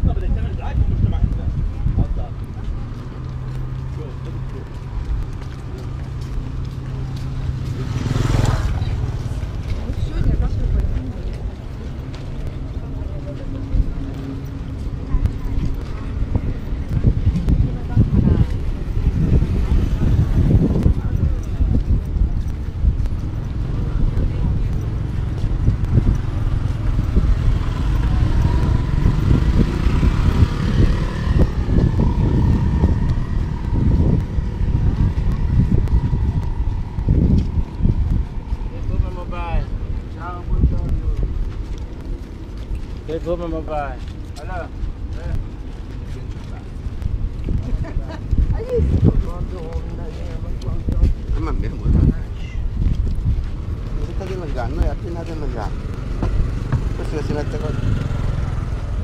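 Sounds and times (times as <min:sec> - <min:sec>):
low engine hum: 0:00.0 - 0:59.0
wind buffeting microphone: 0:00.0 - 0:59.0
louder engine passing: 0:03.0 - 0:10.6, 0:22.8 - 0:39.8, 0:53.6 - 0:59.0
people talking: 0:09.7 - 0:22.6, 0:47.5 - 0:52.7, 0:57.0 - 0:57.9.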